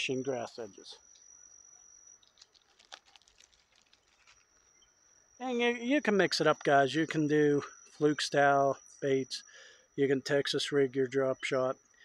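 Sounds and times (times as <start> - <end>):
high insect trill: 0.0 - 12.0.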